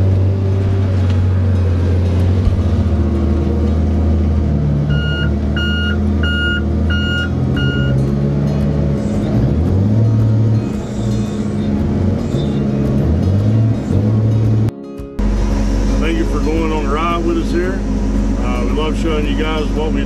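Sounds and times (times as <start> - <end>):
heavy diesel engine drone: 0.0 - 20.0
backup alarm beeps: 4.9 - 8.0.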